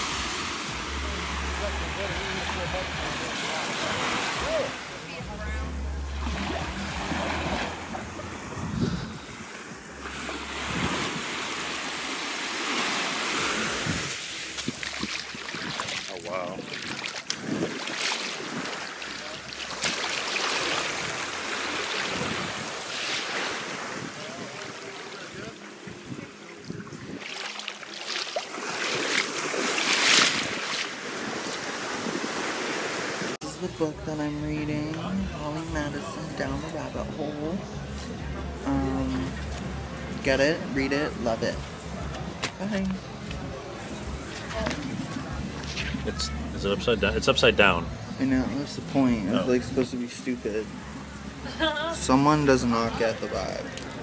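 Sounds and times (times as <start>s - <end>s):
small waves washing on shore: 0.0s - 37.8s
wind gusting on microphone: 8.2s - 11.5s, 13.5s - 18.7s, 22.1s - 22.9s, 23.6s - 27.3s.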